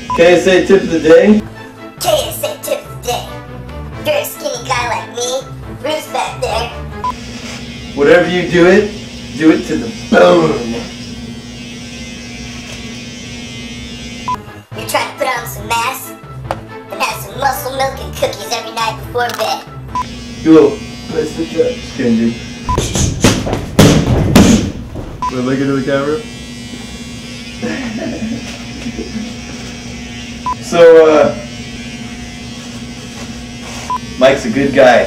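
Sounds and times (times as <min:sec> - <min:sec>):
electric hair clippers buzzing: 0:00.0 - 0:01.4, 0:04.2 - 0:24.7, 0:25.3 - 0:35.0.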